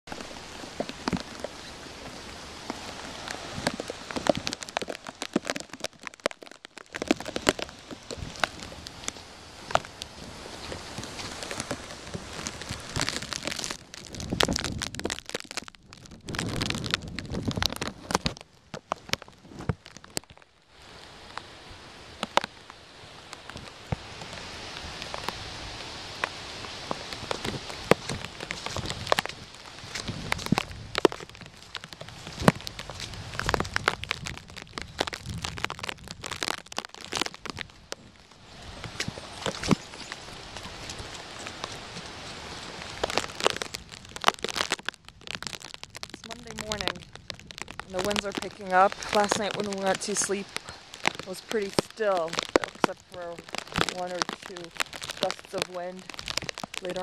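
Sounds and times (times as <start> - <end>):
plastic bag crinkling on microphone: 3.2 - 10.0, 10.6 - 20.5, 26.2 - 57.0.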